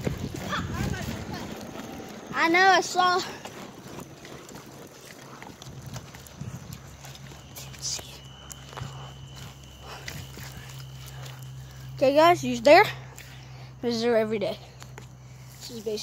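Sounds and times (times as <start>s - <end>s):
clicks and rattles from bike: 0.0s - 7.2s
bicycle rolling over rough road: 0.0s - 16.0s
low steady hum: 0.2s - 16.0s
faint high whine: 6.8s - 14.5s.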